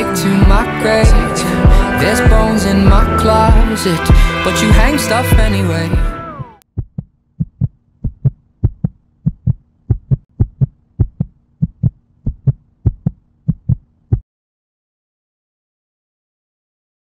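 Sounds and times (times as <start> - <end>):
song: 0.0 - 6.6
heartbeat: 0.4 - 14.2.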